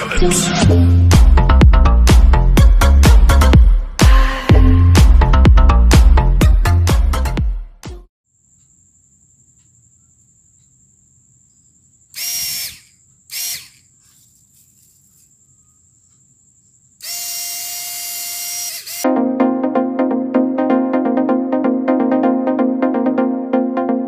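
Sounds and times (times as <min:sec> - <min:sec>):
small fan motor whine: 0:12.2 - 0:14.0, 0:17.0 - 0:19.0
electronic background music: 0:19.0 - 0:24.0.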